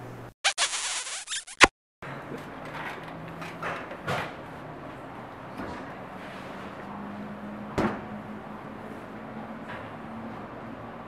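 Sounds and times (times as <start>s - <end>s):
scratchy rasping sound effect: 0.4s - 1.7s.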